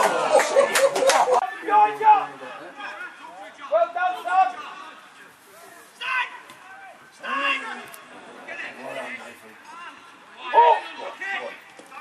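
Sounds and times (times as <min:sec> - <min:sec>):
men talking and calling out: 0:00.0 - 0:12.0.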